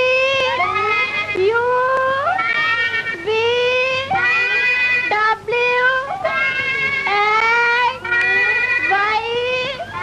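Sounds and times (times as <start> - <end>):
girl singing high notes: 0.0 - 10.0.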